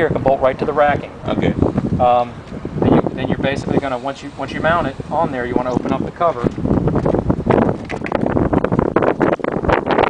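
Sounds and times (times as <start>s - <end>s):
wind noise on microphone: 0.0s - 10.0s.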